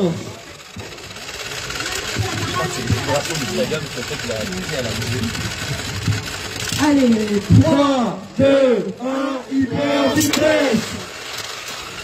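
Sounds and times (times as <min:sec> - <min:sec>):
electric motor spinning disc: 0:00.0 - 0:12.0.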